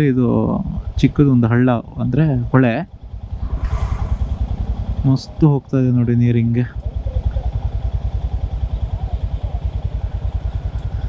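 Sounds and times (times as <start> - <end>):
motorcycle engine idling: 4.4 - 11.0.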